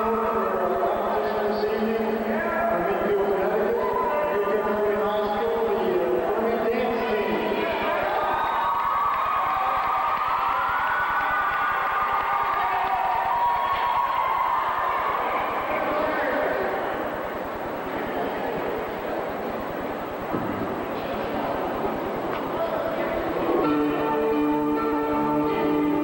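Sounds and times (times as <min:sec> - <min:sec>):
crowd cheering and calling out: 0:03.6 - 0:05.6, 0:06.3 - 0:17.8.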